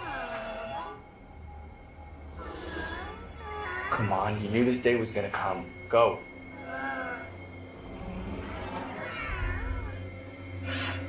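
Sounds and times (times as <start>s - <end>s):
cat meowing: 9.0s - 10.1s.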